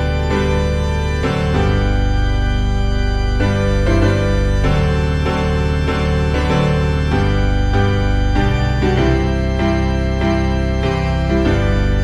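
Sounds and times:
organ playing hymn chords: 0.0s - 12.0s.

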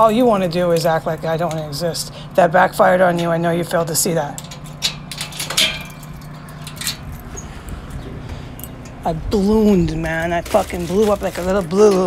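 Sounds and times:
low steady rumble: 0.0s - 12.0s
key rattling in door lock: 4.3s - 7.6s
door opening: 4.4s - 9.0s.

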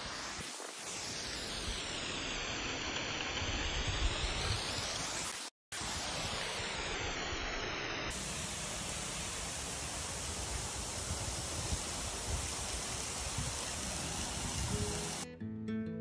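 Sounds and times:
water rushing and splashing: 0.0s - 15.3s.

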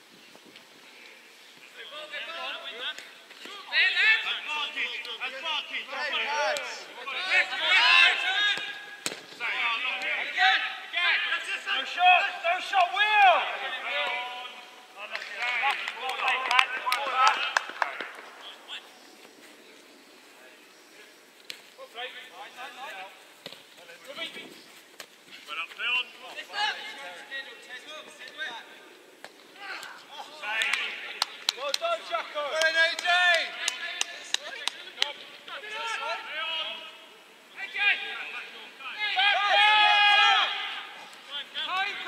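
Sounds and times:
players shouting: 1.8s - 19.0s, 29.5s - 42.0s.

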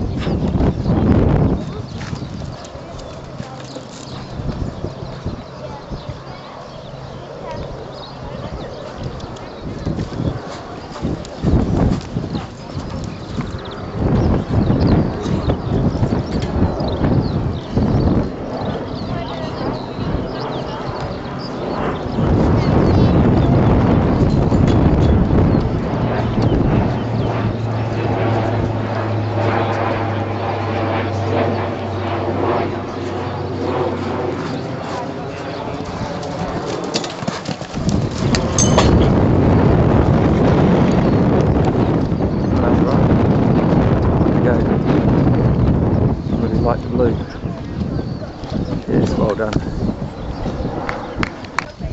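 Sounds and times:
hooves cantering on sand: 0.0s - 45.5s
wind rumbling on microphone: 0.0s - 51.9s
horse hooves thudding on sand: 1.6s - 5.3s, 9.8s - 14.3s, 34.2s - 39.3s.

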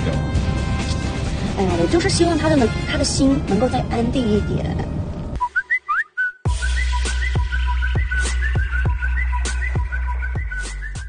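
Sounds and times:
whistled tune: 5.4s - 11.0s
beat with deep bass and drums: 6.4s - 11.0s.

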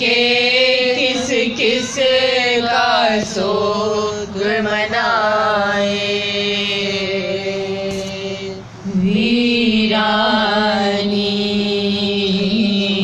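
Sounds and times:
women chanting a lament: 0.0s - 13.0s.

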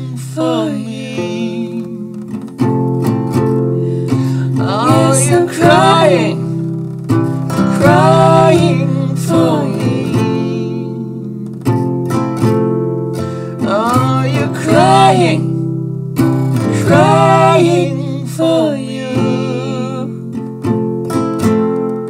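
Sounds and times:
person singing wordless phrases: 0.0s - 2.5s, 4.3s - 6.6s, 7.6s - 11.5s, 13.6s - 15.6s, 16.7s - 20.4s
acoustic guitar chords: 0.0s - 22.0s.

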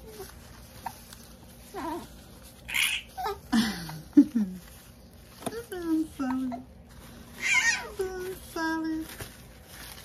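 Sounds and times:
baby cooing: 2.7s - 3.5s.

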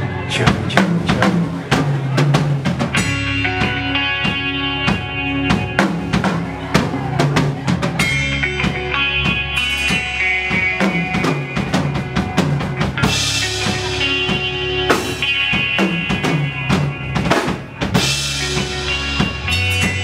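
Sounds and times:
live rock band: 0.0s - 20.0s
electric guitar notes: 2.9s - 20.0s.

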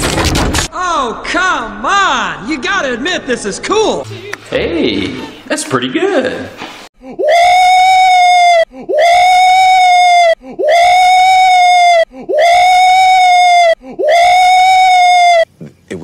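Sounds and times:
man screaming in excitement: 7.1s - 15.5s.

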